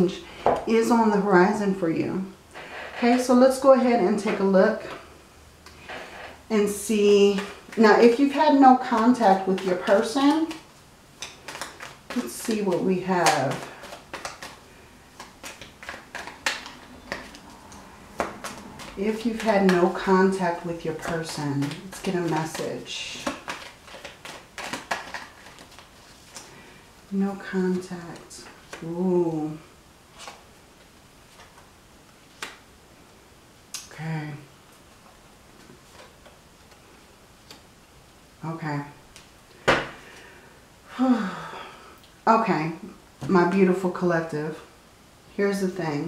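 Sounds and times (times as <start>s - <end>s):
cards being shuffled: 7.2s - 26.7s, 30.1s - 32.6s, 34.7s - 37.7s.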